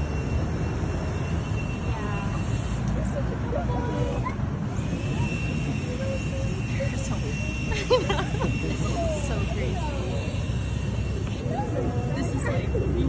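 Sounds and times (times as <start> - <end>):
low rumble of traffic: 0.0 - 13.0
faint voices: 1.6 - 13.0.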